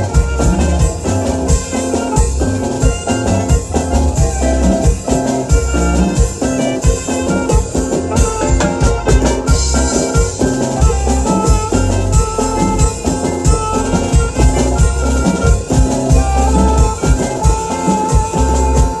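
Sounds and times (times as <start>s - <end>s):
alto saxophone melody: 0.0s - 19.0s
steady drum beat: 0.0s - 19.0s.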